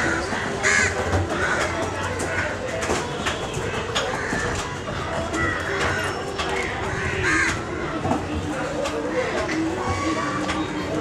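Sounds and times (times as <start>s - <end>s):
crows cawing: 0.0s - 2.6s, 4.1s - 4.8s, 5.4s - 8.0s.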